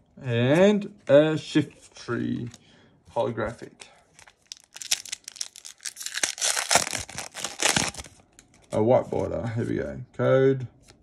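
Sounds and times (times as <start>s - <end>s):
foil wrapper ripping and crinkling: 4.2s - 8.2s.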